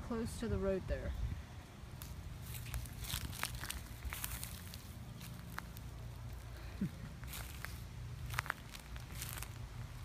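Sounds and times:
leaves crunching underfoot: 1.9 - 10.0.

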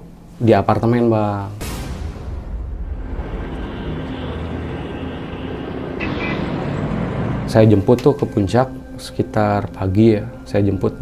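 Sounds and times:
car engine and road noise: 2.4 - 9.2.

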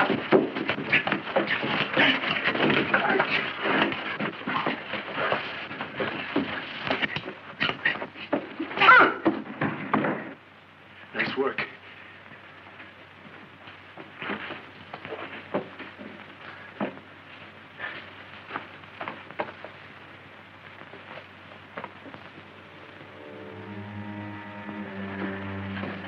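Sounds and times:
knocks and shuffles of people moving: 0.0 - 26.0
old film soundtrack hiss: 0.0 - 26.0
film score music: 22.4 - 26.0.

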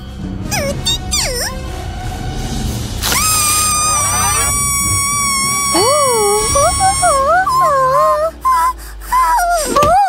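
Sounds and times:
cartoon voice whimpering: 0.5 - 1.6, 3.0 - 10.0.

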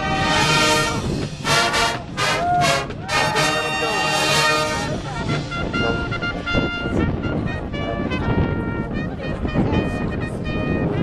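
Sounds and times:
marching band brass: 0.0 - 11.0.

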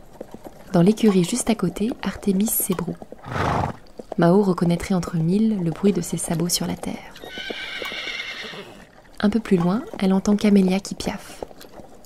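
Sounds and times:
horse whinnying: 3.2 - 3.9, 7.2 - 9.0.

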